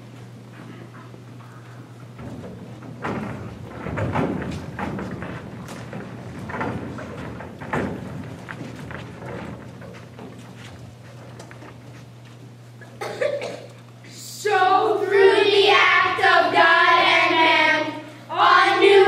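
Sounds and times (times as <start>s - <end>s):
scuffing footsteps on stage: 0.0s - 13.1s
steady low hum: 0.0s - 19.0s
thumps on a stage: 2.1s - 10.5s.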